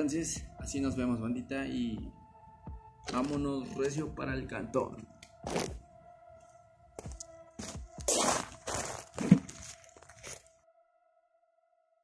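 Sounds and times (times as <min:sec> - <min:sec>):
background music with held notes: 0:00.0 - 0:10.7
footsteps: 0:07.0 - 0:10.5.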